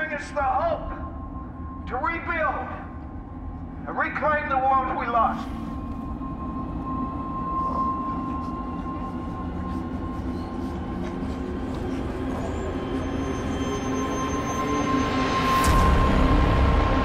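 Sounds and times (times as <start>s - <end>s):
low rumbling drone: 0.0s - 17.0s.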